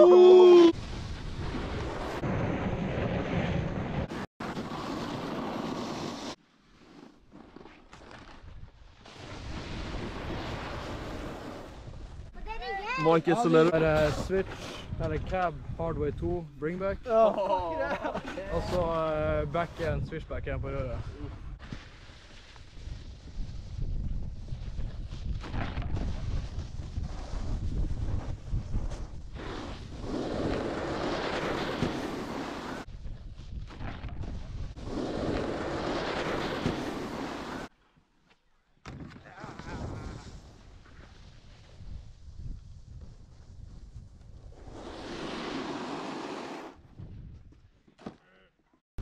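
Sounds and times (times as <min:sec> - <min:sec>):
snowboard scraping on snow: 0:00.8 - 0:15.0, 0:21.6 - 0:37.7, 0:39.5 - 0:46.9.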